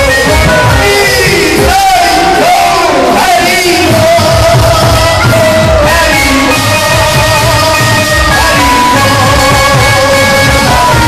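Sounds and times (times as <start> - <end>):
crowd singing a devotional chant: 0.0 - 11.0
low drum beat: 0.0 - 11.0.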